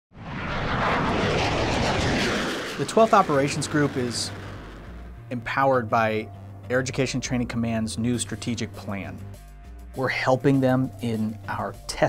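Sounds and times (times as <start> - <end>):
jet engines running: 0.2 - 5.3
low hum: 0.2 - 5.4.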